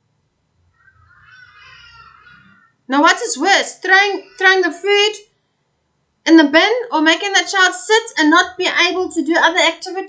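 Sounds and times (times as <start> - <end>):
high-pitched cry: 1.2 - 5.2.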